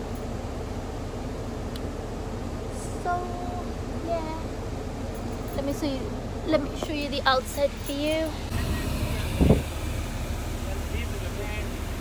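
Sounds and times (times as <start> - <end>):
bus engine rumble: 0.0 - 12.0.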